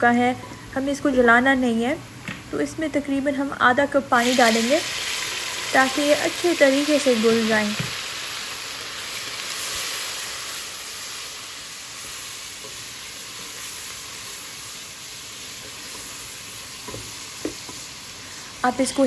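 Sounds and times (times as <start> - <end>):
water sizzling in hot oil: 4.2 - 19.0.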